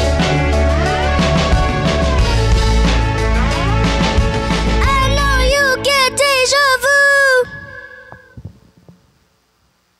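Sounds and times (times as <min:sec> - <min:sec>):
girl singing into microphone: 0:04.8 - 0:08.4.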